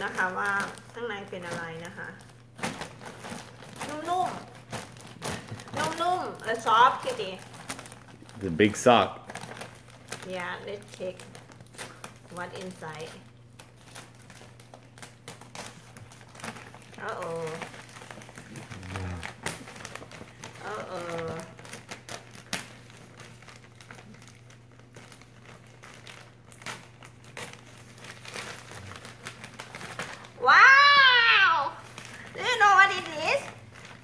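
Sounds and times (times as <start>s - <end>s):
wrapping paper crinkling: 0.0s - 34.0s.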